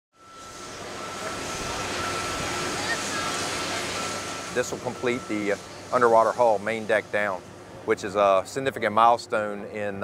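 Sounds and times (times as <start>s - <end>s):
continuous high tone: 0.1s - 10.0s
machinery rumble and hiss: 0.2s - 10.0s.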